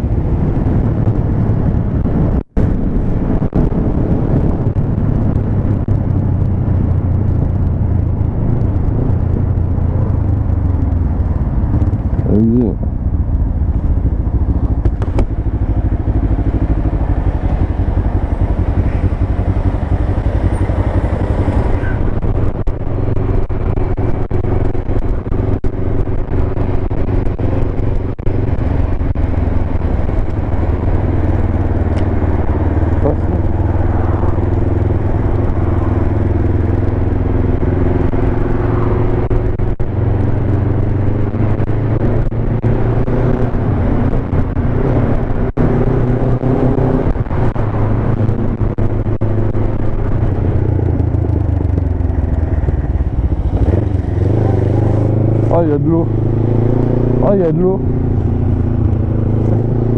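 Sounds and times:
motorcycle engine running: 0.0s - 59.9s.

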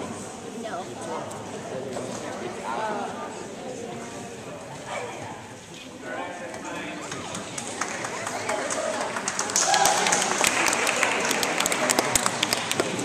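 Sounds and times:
murmur of people talking: 0.0s - 13.0s
hand clapping: 6.5s - 13.0s.

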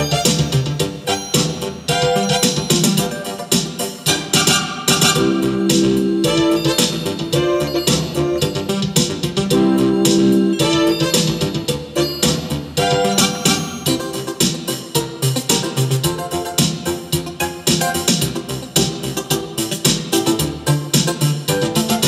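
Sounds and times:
bass line: 0.0s - 22.0s
held keyboard chords: 0.0s - 22.0s
keyboard melody: 0.0s - 22.0s
steady drum beat: 0.0s - 22.0s.

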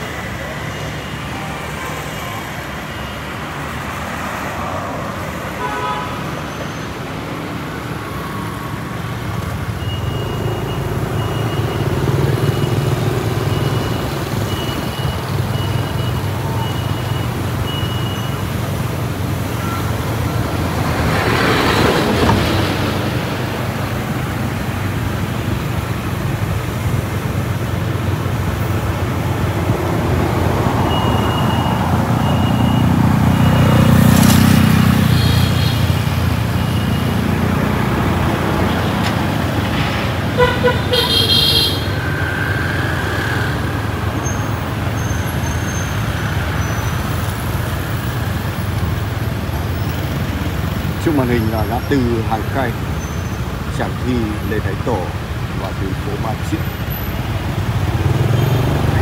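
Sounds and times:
motorbikes and cars passing: 0.0s - 59.0s
vehicle horn honking: 5.6s - 6.2s, 35.0s - 36.0s, 40.4s - 42.0s.

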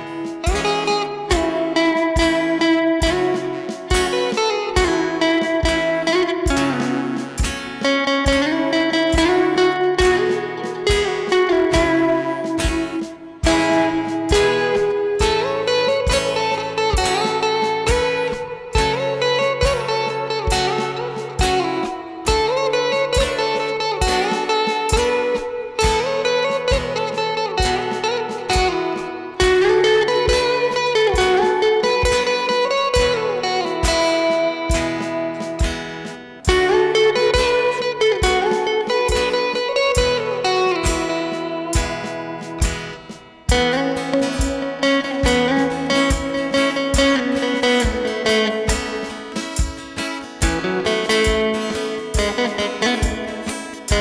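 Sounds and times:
electric guitar melody: 0.0s - 54.0s
electronic drum beat: 0.0s - 54.0s
strummed rhythm guitar: 0.0s - 54.0s.

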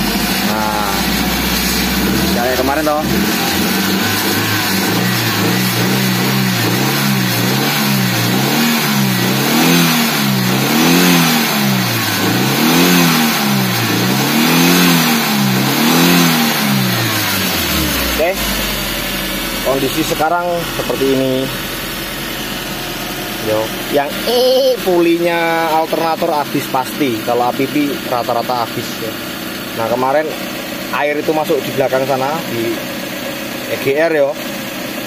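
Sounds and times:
car engine revving: 0.0s - 35.0s.

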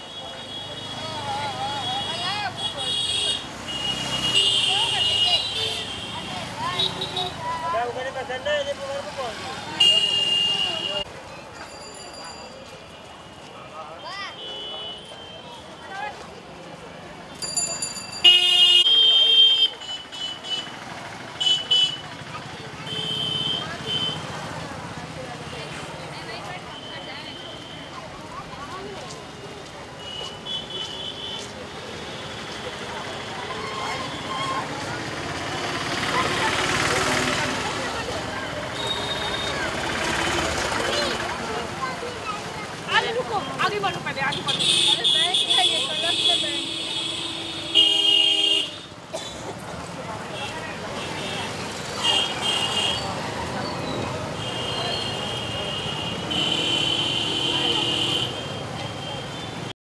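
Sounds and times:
crowd chatter: 0.0s - 59.7s
traffic rumble: 0.0s - 59.8s.

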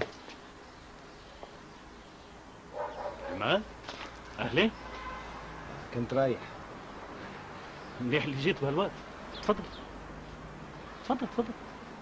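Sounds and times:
dog barking yelps: 2.7s - 3.5s.

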